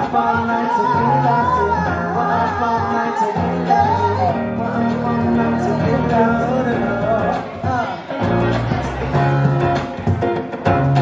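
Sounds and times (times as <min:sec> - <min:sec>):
electric guitar playing chords: 0:00.0 - 0:11.0.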